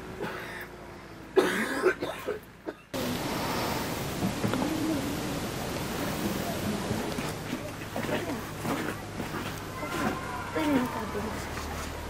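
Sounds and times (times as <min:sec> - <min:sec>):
person coughing: 0:01.4 - 0:02.9.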